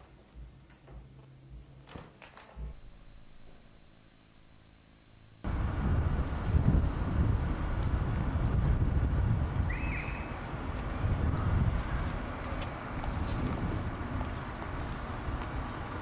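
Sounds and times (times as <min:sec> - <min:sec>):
wind buffeting microphone: 0:05.5 - 0:16.0.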